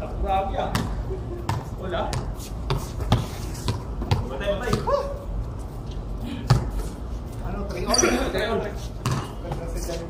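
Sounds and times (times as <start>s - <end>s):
basketball bouncing on concrete: 0.6s - 5.0s, 6.4s - 6.9s, 9.0s - 9.8s.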